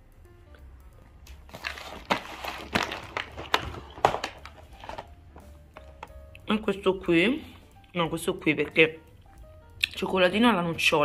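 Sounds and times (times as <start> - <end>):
faint background music: 0.0 - 11.0
cardboard rustling and scraping: 1.5 - 5.1.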